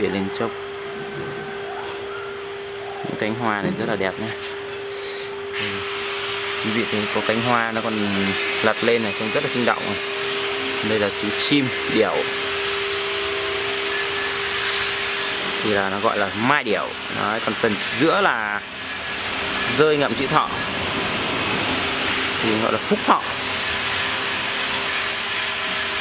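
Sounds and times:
machine whining hum: 0:00.0 - 0:26.0.

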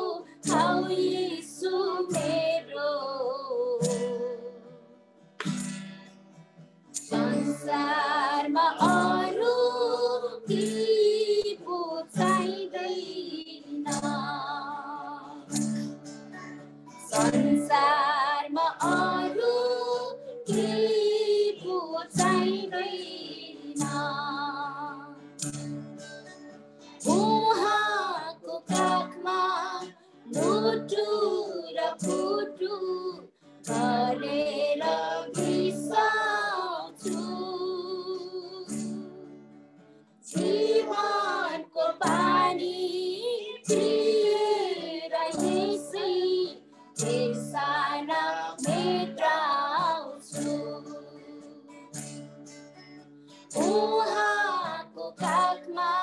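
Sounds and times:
woman singing with vibrato: 0:00.0 - 0:04.7, 0:07.1 - 0:15.7, 0:17.1 - 0:25.3, 0:27.0 - 0:39.3, 0:40.3 - 0:51.8, 0:53.5 - 0:56.0.

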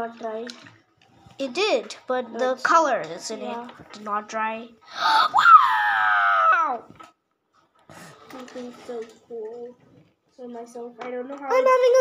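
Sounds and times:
girl whining cry: 0:05.0 - 0:06.8.

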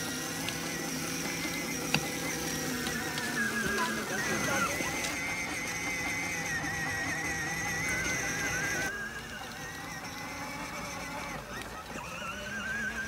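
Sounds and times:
toy car electric motor whining: 0:00.0 - 0:13.0.

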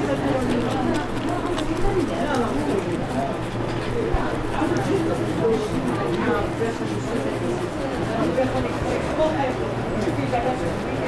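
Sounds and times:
indistinct voices talking: 0:00.0 - 0:11.0.

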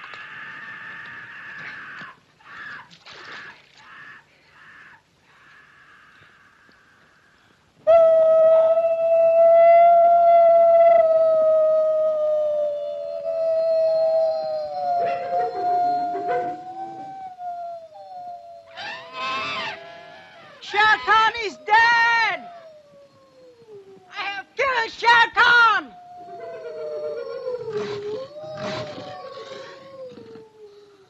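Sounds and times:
long high howl: 0:07.9 - 0:20.6, 0:21.6 - 0:24.2, 0:25.8 - 0:31.0
second howl: 0:07.9 - 0:20.7, 0:21.3 - 0:24.2, 0:25.8 - 0:31.0
man giving loud cries: 0:20.6 - 0:22.8.

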